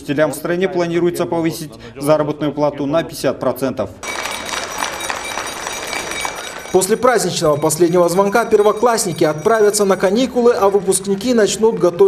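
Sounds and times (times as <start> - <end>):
handbell jangling: 4.0 - 10.5
crowd noise: 4.0 - 12.0.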